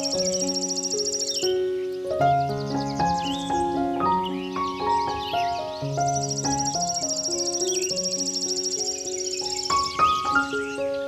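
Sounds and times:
high insect chirping: 0:00.0 - 0:11.0
slow solo piano music: 0:00.0 - 0:11.0.

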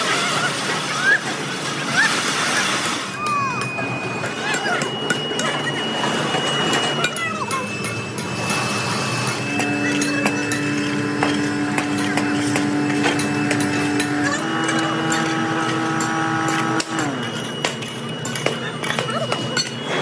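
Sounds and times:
steady droning tone: 0:03.6 - 0:19.9.

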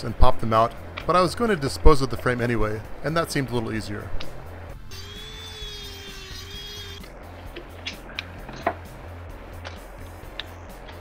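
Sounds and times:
funk background music: 0:03.6 - 0:11.0
rotary tool whining: 0:04.8 - 0:08.8.

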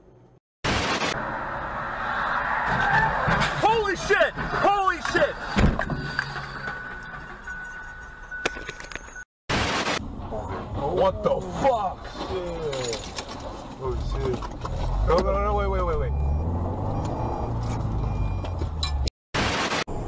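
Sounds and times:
car road and engine noise: 0:00.0 - 0:19.1.

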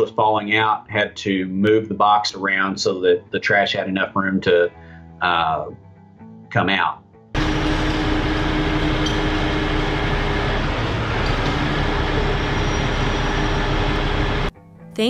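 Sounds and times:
diesel engine running under load: 0:07.4 - 0:14.5.

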